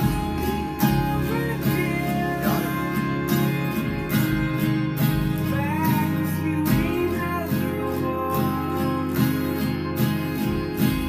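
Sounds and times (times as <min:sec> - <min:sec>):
acoustic guitar strumming: 0:00.0 - 0:11.0.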